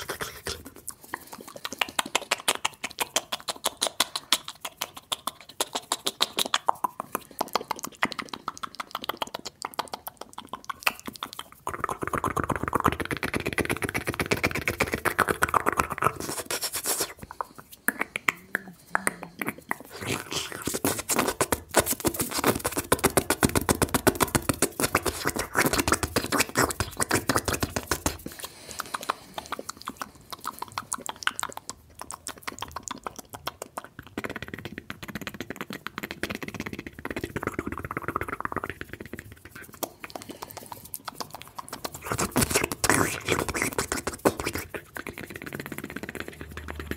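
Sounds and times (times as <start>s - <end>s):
wet mouth clicks and lip smacks: 0.0s - 46.9s.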